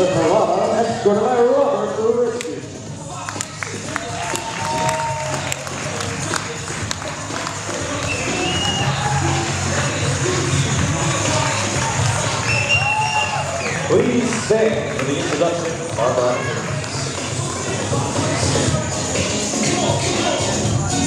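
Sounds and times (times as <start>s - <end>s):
music playing: 0.0s - 21.0s
people clapping and cheering: 3.0s - 20.9s.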